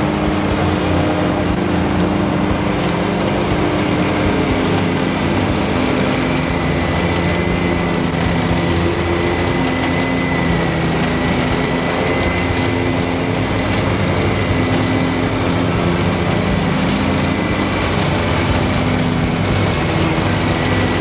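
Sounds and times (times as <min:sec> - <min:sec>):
lawn mower engine drone: 0:00.0 - 0:21.0
mower blades high whine: 0:00.0 - 0:21.0.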